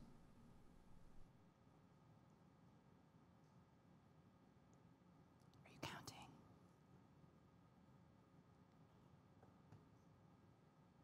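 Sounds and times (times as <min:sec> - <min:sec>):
faint whisper: 0:05.6 - 0:06.4.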